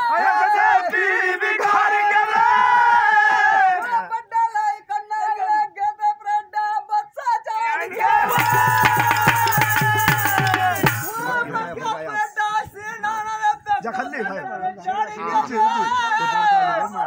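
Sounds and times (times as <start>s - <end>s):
drum strokes: 8.3s - 11.2s.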